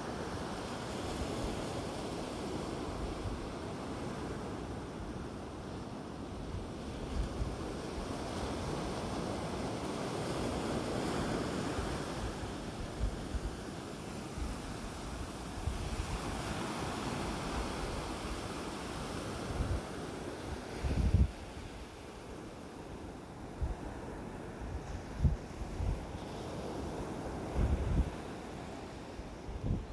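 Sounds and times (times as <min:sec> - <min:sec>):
ocean waves breaking: 0:00.0 - 0:29.8
wind buffeting microphone: 0:20.6 - 0:21.8, 0:23.6 - 0:28.3, 0:29.4 - 0:29.9.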